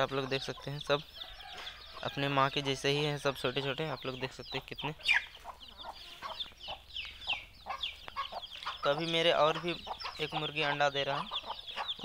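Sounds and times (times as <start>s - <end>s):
chicks cheeping: 0.0s - 12.0s
hen clucking: 0.0s - 12.0s.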